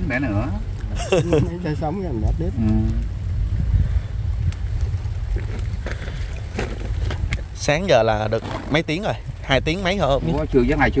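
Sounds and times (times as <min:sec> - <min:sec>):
wind buffeting microphone: 0:00.0 - 0:11.0
chili stems snapping: 0:02.6 - 0:03.1, 0:04.4 - 0:04.7.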